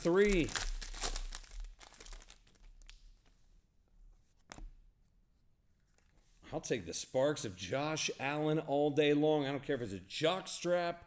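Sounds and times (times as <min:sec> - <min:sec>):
plastic wrapper crinkling: 0:00.0 - 0:03.3.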